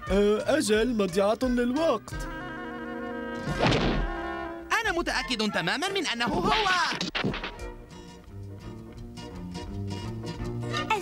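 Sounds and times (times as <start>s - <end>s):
cartoon background music: 0.0s - 11.0s
dull thunk sound effect: 3.4s - 4.2s, 7.0s - 7.7s.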